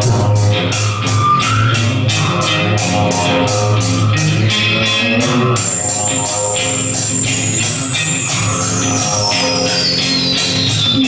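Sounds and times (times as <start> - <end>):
rock band playing live: 0.0 - 11.0
high tone gliding down: 5.1 - 11.0.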